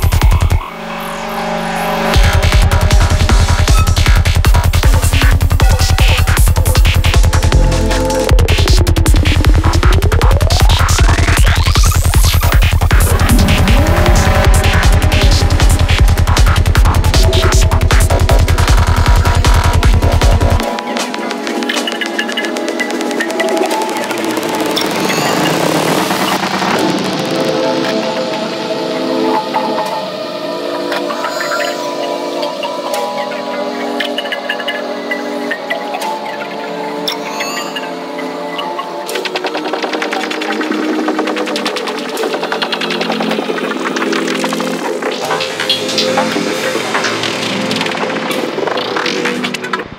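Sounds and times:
layered synth lines: 0:00.0 - 0:49.9
fast ticking percussion: 0:02.2 - 0:27.5
rising synth sweep: 0:11.7 - 0:20.7.

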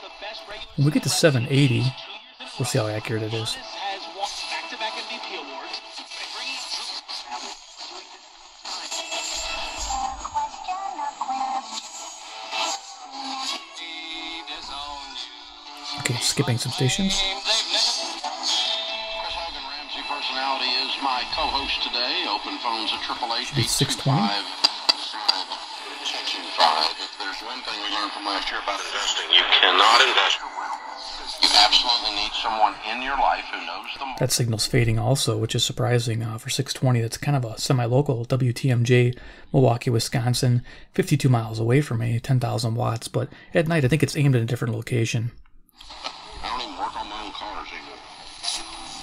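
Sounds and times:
radio music and talk: 0:00.0 - 0:49.0.

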